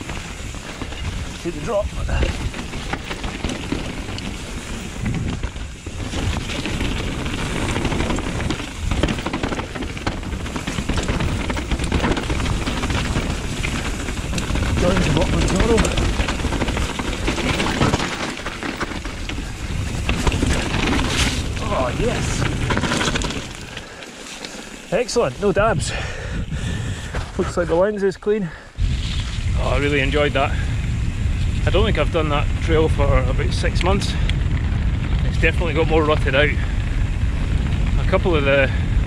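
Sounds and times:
tyres rolling over loose ground: 0.0s - 25.9s
bike rattling: 0.0s - 39.0s.

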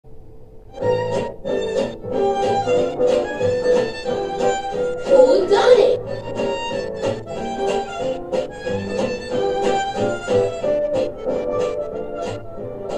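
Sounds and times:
upbeat tune through television: 0.9s - 12.9s.

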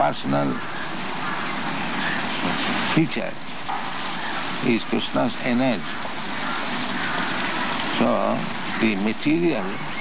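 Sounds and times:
people talking: 0.0s - 0.7s, 2.4s - 3.4s, 4.6s - 5.9s, 7.9s - 9.9s
steady rushing noise: 0.0s - 10.0s.

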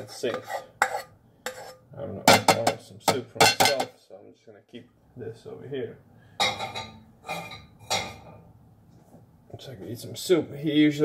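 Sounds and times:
rice scraped out of pot: 0.0s - 1.8s
cooking pot clanking: 2.3s - 3.9s.

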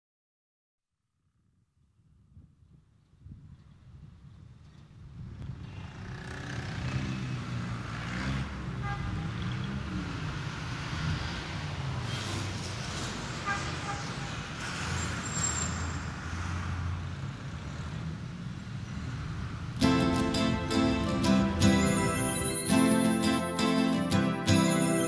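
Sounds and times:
rumble of passing vehicles: 2.6s - 23.2s
short high tones: 19.8s - 25.0s.

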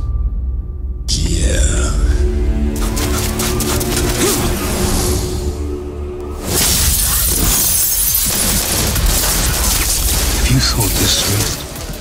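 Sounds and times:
low music: 0.0s - 6.6s
glass shattering: 6.4s - 11.9s.

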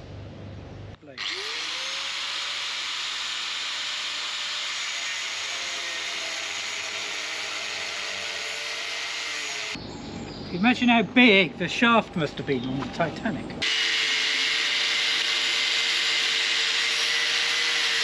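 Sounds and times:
angle grinder cutting metal: 1.2s - 9.8s, 13.6s - 18.0s.

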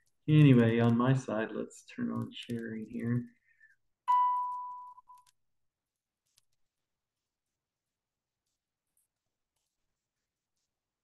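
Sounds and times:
electronic notification ding: 4.1s - 4.9s.

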